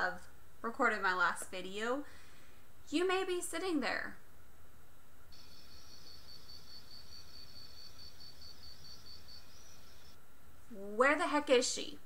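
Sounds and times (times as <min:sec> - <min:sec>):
faint low room hum: 0:00.0 - 0:12.0
crickets chirping: 0:05.3 - 0:10.2.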